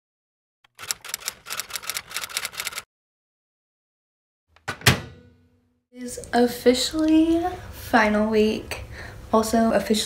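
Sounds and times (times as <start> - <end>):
typewriter key clicks: 0.7 - 2.8.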